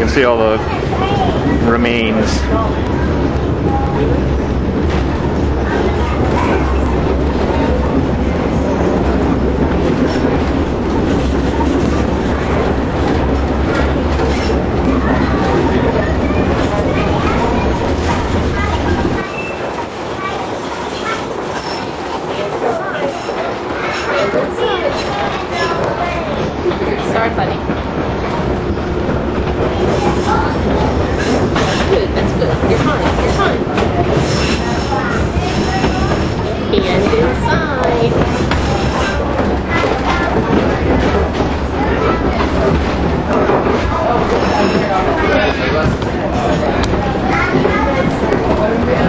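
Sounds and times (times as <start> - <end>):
electric trolley hum: 0.0 - 49.0
wheels on rail: 0.0 - 49.0.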